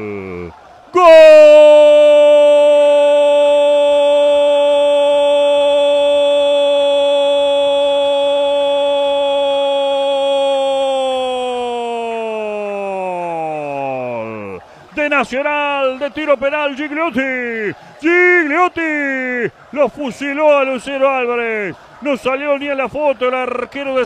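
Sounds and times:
commentator's long goal cry: 0:00.0 - 0:15.2.

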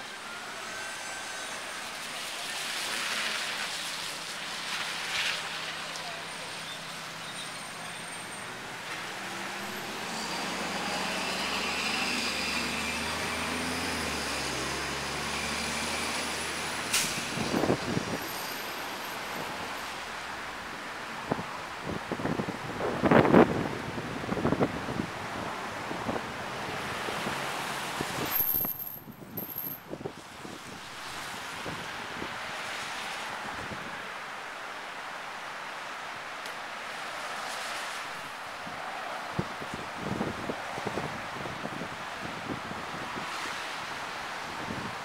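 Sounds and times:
heavy vehicle engine: 0:00.0 - 0:21.4
traffic on a wet road: 0:00.0 - 0:45.0.

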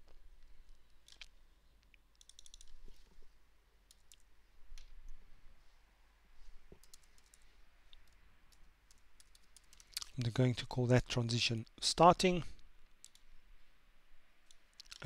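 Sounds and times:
computer keyboard typing: 0:02.2 - 0:02.7, 0:06.8 - 0:07.4, 0:08.0 - 0:10.0, 0:13.0 - 0:13.2.

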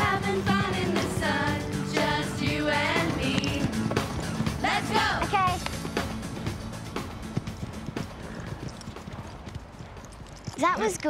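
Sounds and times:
horse hooves clopping on dirt: 0:02.2 - 0:11.0.

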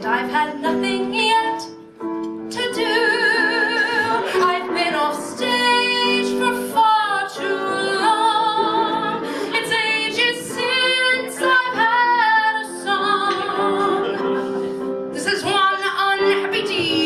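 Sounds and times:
woman singing with vibrato: 0:00.0 - 0:01.7, 0:02.5 - 0:14.2, 0:15.1 - 0:17.0.

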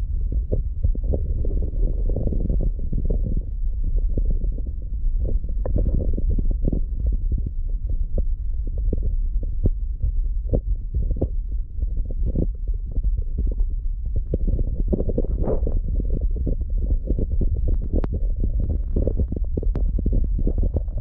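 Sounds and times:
muffled underwater rumble: 0:00.0 - 0:21.0
soft underwater clicks and ticks: 0:00.0 - 0:21.0.

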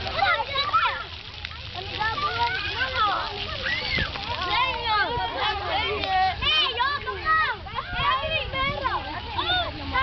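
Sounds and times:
children chattering and calling: 0:00.0 - 0:10.0
water splashing: 0:00.0 - 0:10.0.

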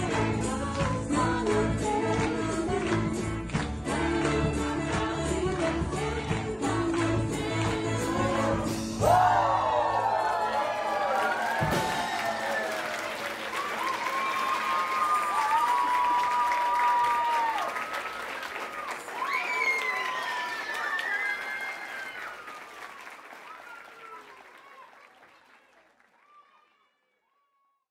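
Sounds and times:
audience applause: 0:09.0 - 0:26.6.

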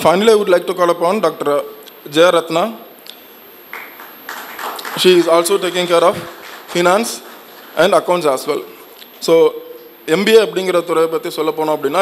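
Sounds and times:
man speaking over microphone: 0:00.0 - 0:02.9, 0:04.8 - 0:12.0.

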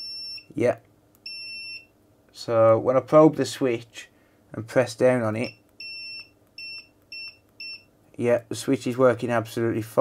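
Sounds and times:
multimeter beeps: 0:00.0 - 0:00.5, 0:01.2 - 0:01.9, 0:05.4 - 0:07.9.

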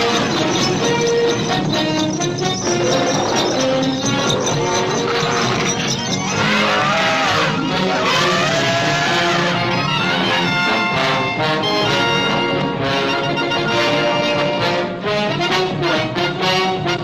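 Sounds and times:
orchestral brass music: 0:00.0 - 0:17.0.

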